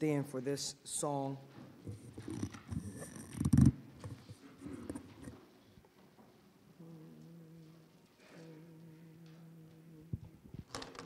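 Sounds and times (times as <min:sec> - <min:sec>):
microphone handling rustling: 0:01.8 - 0:05.4.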